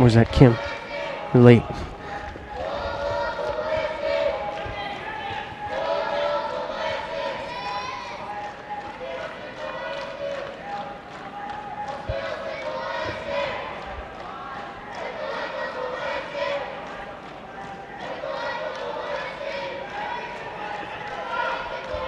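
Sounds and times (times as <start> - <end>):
crowd shouting: 0.0 - 22.0.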